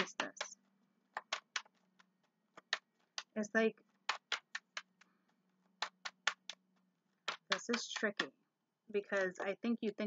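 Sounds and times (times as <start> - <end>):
cards being shuffled: 1.1 - 3.4, 4.0 - 8.3.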